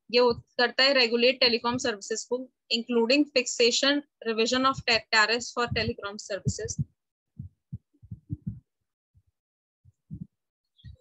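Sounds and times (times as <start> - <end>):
soft low thumps: 1.6 - 2.0, 4.6 - 8.8, 9.9 - 11.0.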